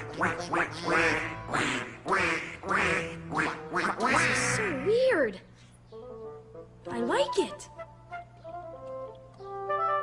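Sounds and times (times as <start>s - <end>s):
cartoon duck quacking: 0.0s - 5.2s.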